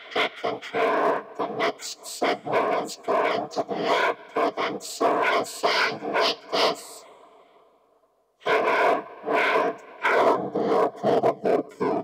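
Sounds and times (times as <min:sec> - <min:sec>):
robotic vocoder speech: 0:00.0 - 0:07.1, 0:08.4 - 0:12.0.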